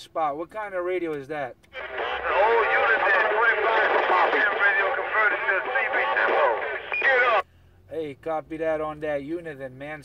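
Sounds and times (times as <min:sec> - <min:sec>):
man's voice over cb radio: 0:01.8 - 0:07.4.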